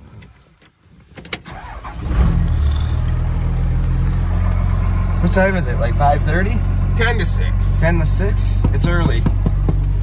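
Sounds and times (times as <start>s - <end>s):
diesel truck engine idling: 1.6s - 10.0s.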